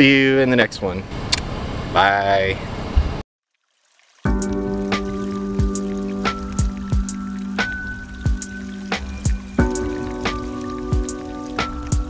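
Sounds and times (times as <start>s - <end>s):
deep kick drums: 4.3s - 12.0s
held synth chords: 4.3s - 12.0s.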